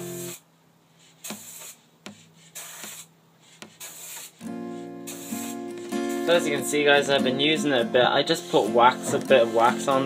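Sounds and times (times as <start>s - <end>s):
acoustic guitar music: 0.0s - 0.4s, 4.3s - 10.0s
aerosol can hissing: 0.0s - 0.4s, 1.1s - 6.5s, 8.3s - 10.0s.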